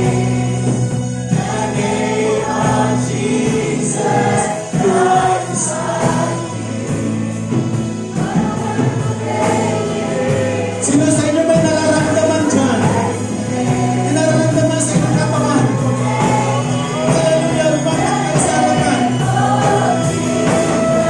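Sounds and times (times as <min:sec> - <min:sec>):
congregation singing worship song: 0:00.0 - 0:21.0
keyboard: 0:00.0 - 0:21.0.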